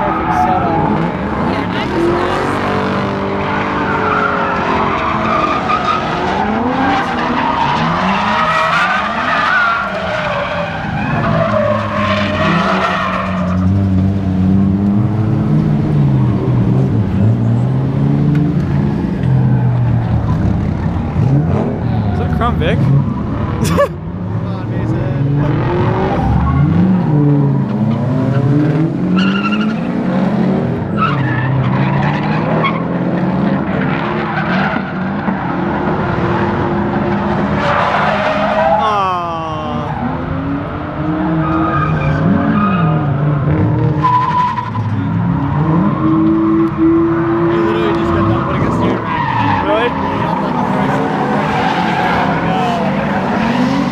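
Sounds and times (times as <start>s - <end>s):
car engine revving: 0.0s - 53.9s
tires squealing: 0.0s - 53.9s.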